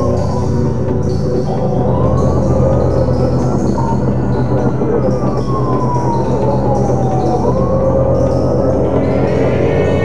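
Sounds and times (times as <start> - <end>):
music with low sustained tones: 0.0 - 10.0
police siren wailing: 0.0 - 10.0.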